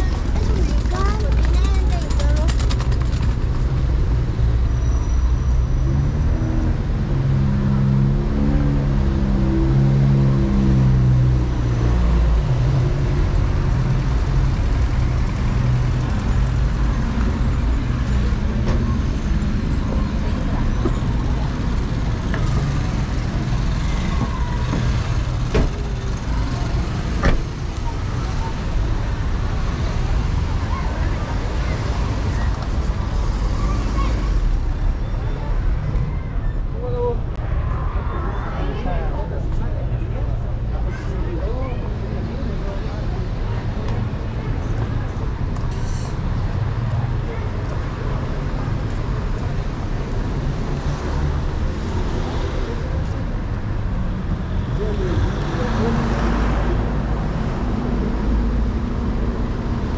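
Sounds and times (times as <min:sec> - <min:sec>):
low traffic rumble: 0:00.0 - 0:59.9
people talking on sidewalk: 0:00.0 - 0:59.9.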